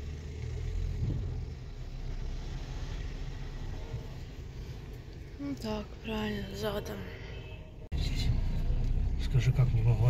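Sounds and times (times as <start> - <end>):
car engine hum in cabin: 0.0 - 6.3, 7.9 - 10.0.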